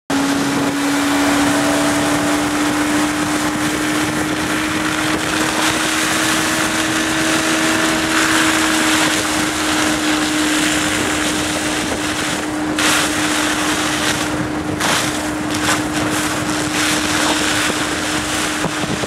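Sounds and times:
motorboat engine droning: 0.1s - 19.0s
wind on microphone: 0.1s - 19.0s.

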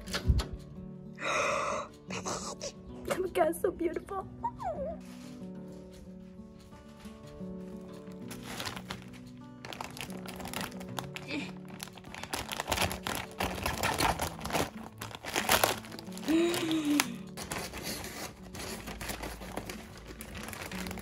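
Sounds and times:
light background music: 0.0s - 21.0s
plastic mailer crinkling: 7.1s - 21.0s
scissors cutting plastic: 8.0s - 21.0s.

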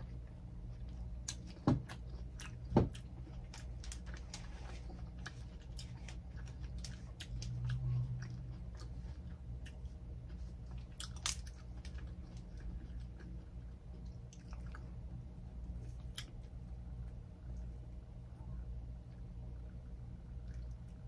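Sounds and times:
crunchy fruit chewing: 0.0s - 17.8s.

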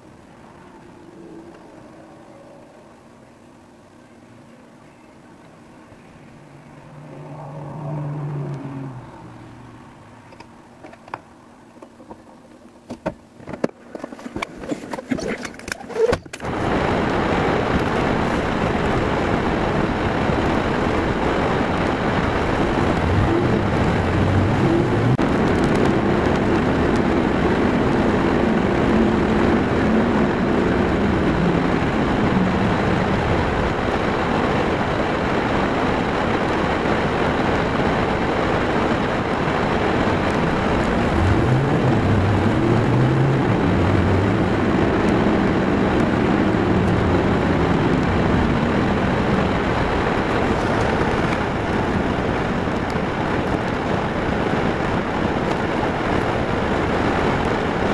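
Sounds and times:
car engine from inside cabin: 0.0s - 12.3s, 16.0s - 57.8s.

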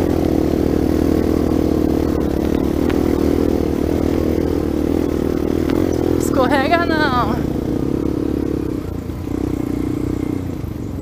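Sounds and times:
bike clicking over bumps: 0.0s - 6.3s
dirt bike engine running: 0.0s - 11.0s.

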